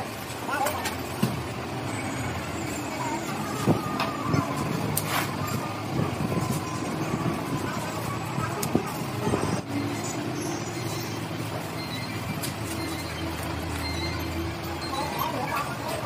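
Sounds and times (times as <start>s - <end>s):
traffic noise: 0.0s - 16.0s
workshop hum: 0.0s - 16.0s.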